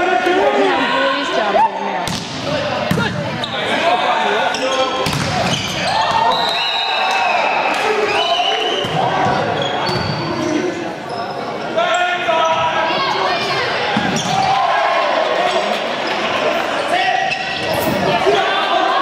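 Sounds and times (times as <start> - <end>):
people shouting and calling out: 0.0 - 9.6, 16.7 - 19.0
volleyball hits: 2.0 - 3.4, 4.9 - 6.3
sneakers squeaking on hardwood: 4.5 - 6.4, 8.8 - 14.5.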